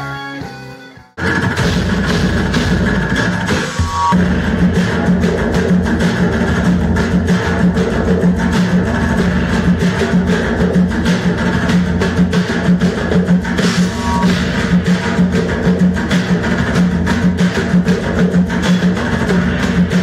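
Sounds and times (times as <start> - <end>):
fast dense drumbeat: 1.2 - 20.0.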